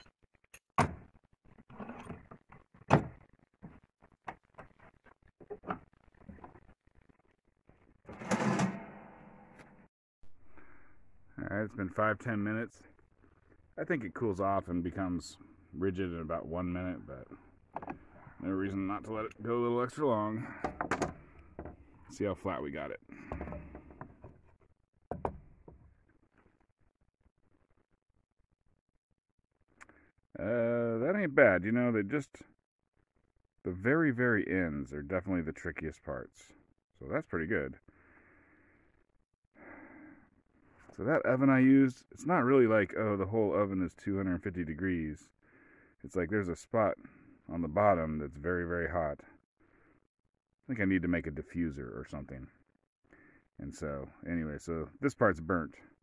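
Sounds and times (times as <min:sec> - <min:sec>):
boards rubbing and scraping: 0:01.0 - 0:06.7, 0:08.1 - 0:09.8
sharp knocks on wooden boards: 0:25.1 - 0:25.4.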